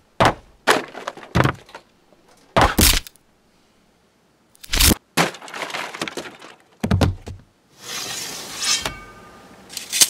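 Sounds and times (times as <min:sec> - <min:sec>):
heavy thud: 0:00.2 - 0:01.6
falling debris clatter: 0:00.2 - 0:02.7, 0:05.1 - 0:07.2.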